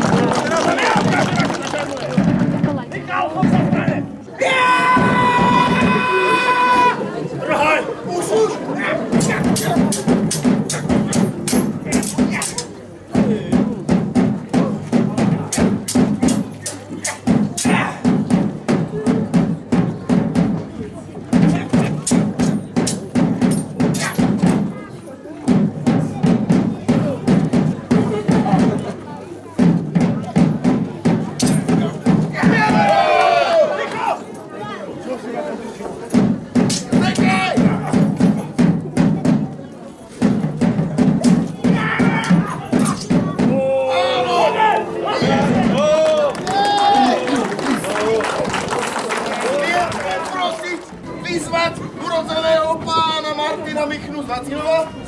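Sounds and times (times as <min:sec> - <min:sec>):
drum roll: 0:00.0 - 0:04.2, 0:04.8 - 0:06.2, 0:09.1 - 0:12.5, 0:13.1 - 0:16.6, 0:17.2 - 0:24.8, 0:25.5 - 0:29.0, 0:29.6 - 0:33.0, 0:36.1 - 0:39.6, 0:40.2 - 0:43.7
loud held shout: 0:04.4 - 0:08.6, 0:32.3 - 0:34.2, 0:41.6 - 0:42.7, 0:43.5 - 0:48.3
steel sabres clashing: 0:09.2 - 0:12.8, 0:15.4 - 0:18.1, 0:21.4 - 0:24.6, 0:31.4 - 0:32.0, 0:36.6 - 0:38.4, 0:41.2 - 0:43.3.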